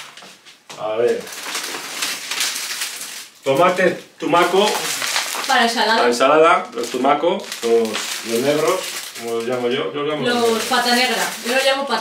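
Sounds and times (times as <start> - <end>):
plastic bags rustling: 0.0 - 12.0.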